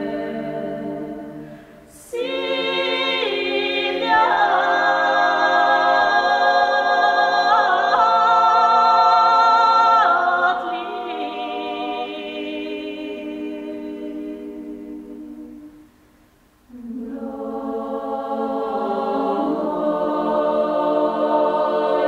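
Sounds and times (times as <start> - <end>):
women's choir singing a cappella: 0.0 - 15.9, 16.7 - 22.0.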